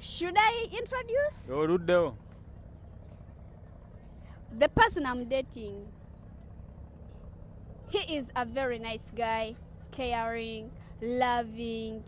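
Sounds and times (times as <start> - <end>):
distant street traffic rumble: 0.0 - 12.0.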